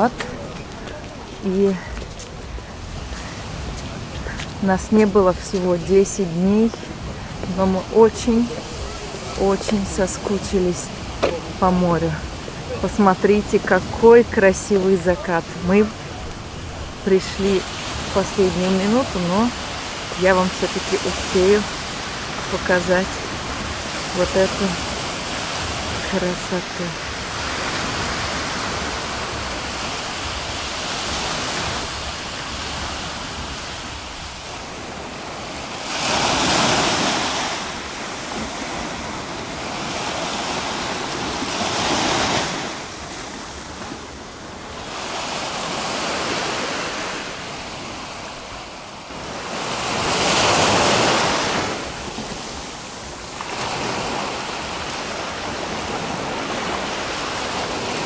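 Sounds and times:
waves washing up a beach: 0:00.0 - 0:58.0.

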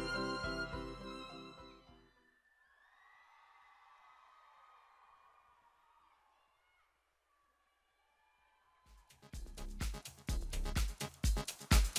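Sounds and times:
loud music: 0:00.0 - 0:02.0, 0:09.3 - 0:11.9.

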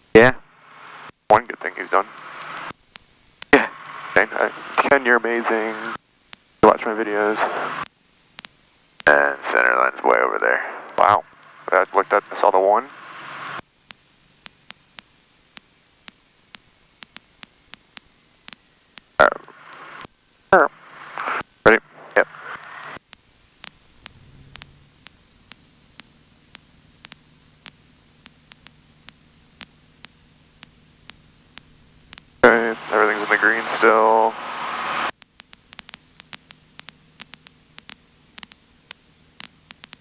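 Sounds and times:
faint evenly spaced clicks: 0:00.0 - 0:40.0
low steady hum: 0:00.0 - 0:40.0
unclear voices in headset: 0:01.3 - 0:02.6, 0:03.6 - 0:06.0, 0:06.6 - 0:07.8, 0:09.1 - 0:13.0, 0:19.2 - 0:23.0, 0:32.4 - 0:35.1.

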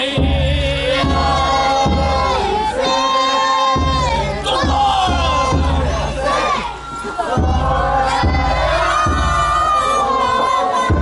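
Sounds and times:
bells: 0:00.0 - 0:11.0
crowd shouting and chanting: 0:00.0 - 0:11.0
drumming: 0:00.0 - 0:11.0.

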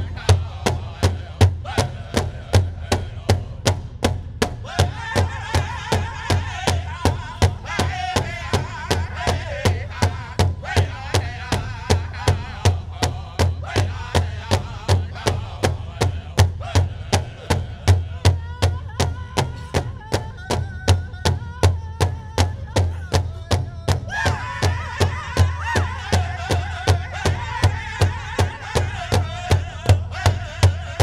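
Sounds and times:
group singing: 0:00.0 - 0:03.8, 0:04.5 - 0:21.1, 0:24.0 - 0:31.0
large hide drum beats: 0:00.0 - 0:31.0.

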